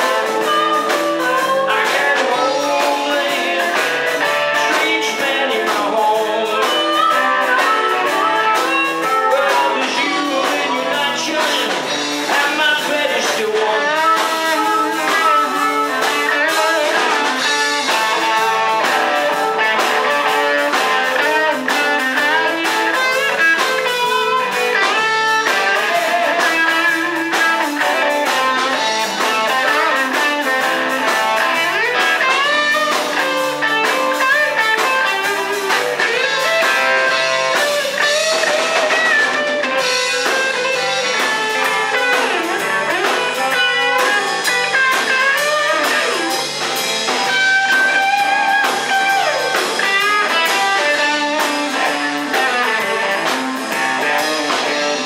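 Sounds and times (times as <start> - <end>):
drum kit: 0.0 - 55.0
electric guitars: 0.0 - 55.0
harmonica through microphone: 0.0 - 55.0.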